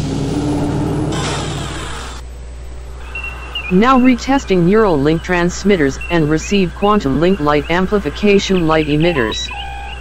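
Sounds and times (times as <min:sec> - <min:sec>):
low electronic hum: 0:00.0 - 0:10.0
brief held tone: 0:03.0 - 0:04.6.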